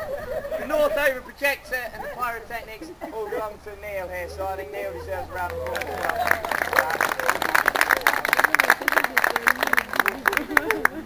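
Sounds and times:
voices talking: 0:00.0 - 0:11.0
audience applauding: 0:05.3 - 0:11.0.

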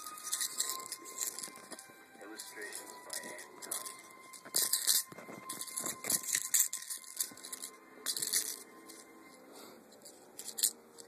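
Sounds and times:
fabric rustling and scratching: 0:00.0 - 0:09.4.

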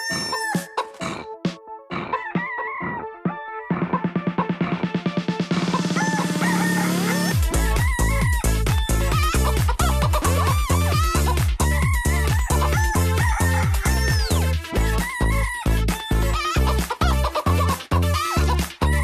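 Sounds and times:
chicken clucking and crowing: 0:00.0 - 0:01.3, 0:01.9 - 0:04.8, 0:05.5 - 0:19.0
techno dance track: 0:00.0 - 0:19.0.

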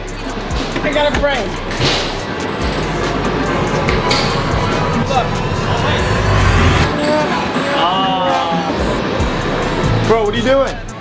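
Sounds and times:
arcade music: 0:00.0 - 0:10.4
arcade game machine noise: 0:00.0 - 0:11.0
low rumble: 0:01.6 - 0:07.6.

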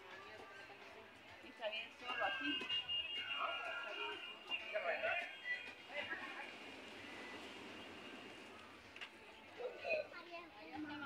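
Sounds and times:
distant voices of people: 0:02.0 - 0:10.1.

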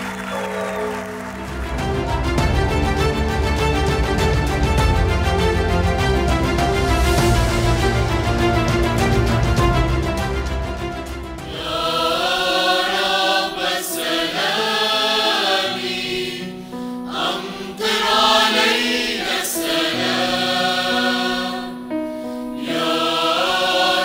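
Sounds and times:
choir singing long held notes: 0:07.0 - 0:24.0.

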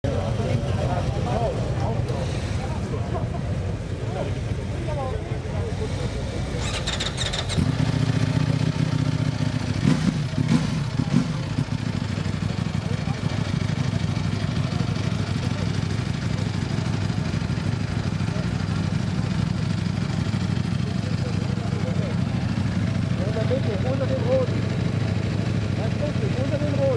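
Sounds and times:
motorcycle engine starting: 0:05.8 - 0:26.9
motorcycle engine idling: 0:06.4 - 0:26.9
motorcycle engine revving: 0:06.5 - 0:26.9.

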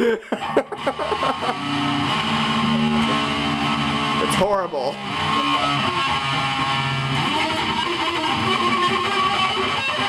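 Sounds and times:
distorted electric guitar: 0:00.4 - 0:10.0.

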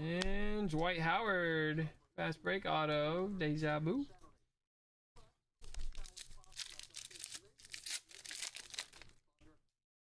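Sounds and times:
foil pack tearing and crinkling: 0:05.6 - 0:09.1.

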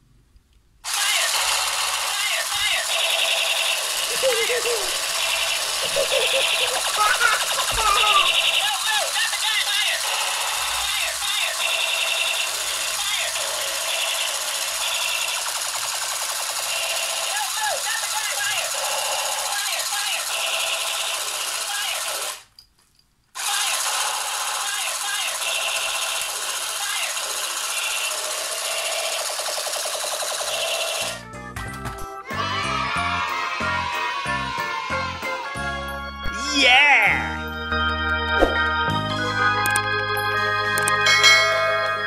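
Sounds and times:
toy gun machine-gun rattle: 0:00.8 - 0:22.7, 0:23.4 - 0:31.2.

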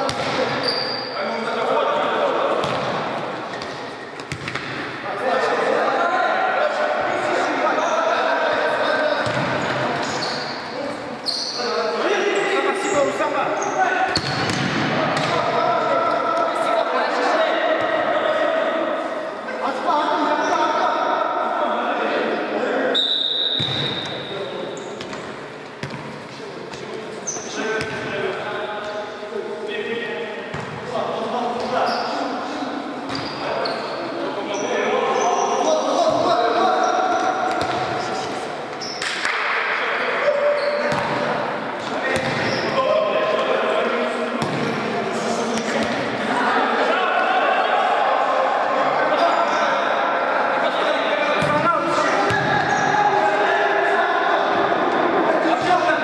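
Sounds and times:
ball kicked and bouncing: 0:03.6 - 0:04.8
players shouting: 0:45.4 - 0:56.0.

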